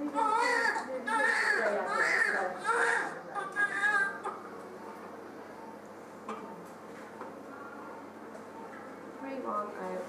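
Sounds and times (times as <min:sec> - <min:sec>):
newborn baby crying: 0:00.1 - 0:04.4.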